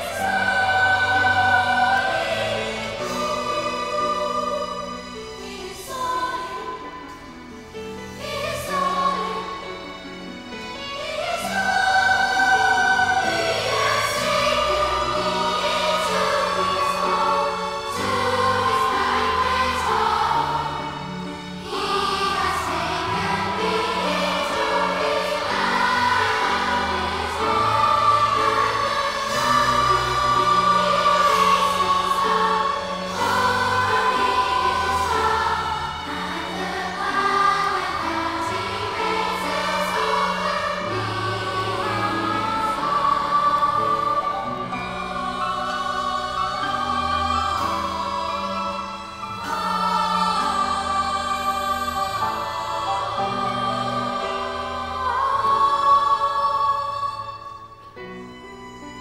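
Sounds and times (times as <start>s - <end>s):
children's choir singing: 0.0s - 59.0s
instrumental accompaniment: 0.0s - 59.0s.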